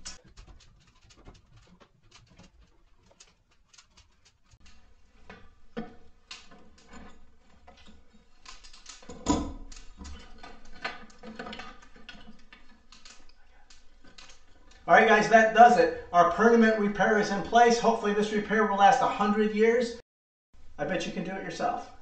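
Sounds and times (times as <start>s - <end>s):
metal clicks and rattles: 0.0s - 14.9s.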